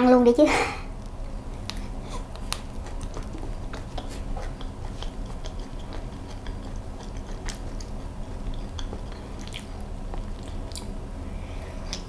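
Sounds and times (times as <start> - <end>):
steady low hum: 0.0 - 12.0
close-miked chewing: 1.0 - 11.0, 11.6 - 12.0
small mouth clicks: 1.6 - 11.0.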